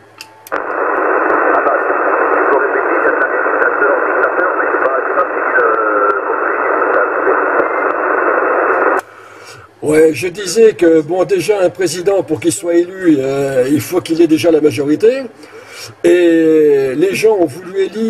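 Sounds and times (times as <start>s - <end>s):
radio static hiss: 0.5s - 18.0s
faint voice over radio: 1.1s - 8.2s.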